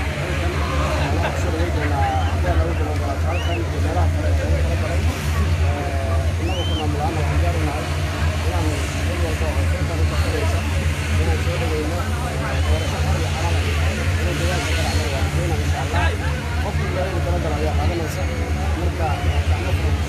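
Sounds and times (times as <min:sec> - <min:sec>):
man speaking into a microphone: 0:00.0 - 0:20.0
steady low rumble: 0:00.0 - 0:20.0.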